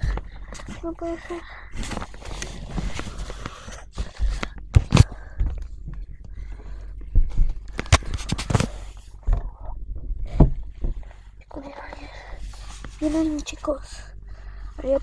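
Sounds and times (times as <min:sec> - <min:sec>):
rustling and scraping: 0:00.0 - 0:14.1.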